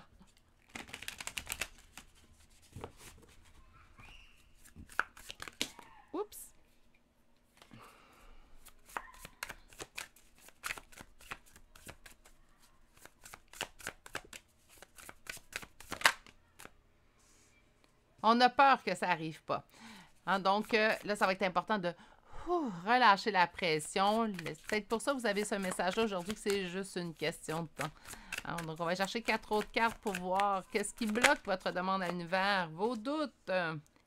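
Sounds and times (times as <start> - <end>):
rapid card clicks: 0.7 - 2.1, 27.5 - 32.2
cards slapping: 0.7 - 3.3, 4.6 - 5.8, 8.6 - 16.7, 23.8 - 32.3
cards riffle shuffled: 0.7 - 3.4, 4.6 - 5.8, 8.6 - 16.7, 23.8 - 32.3.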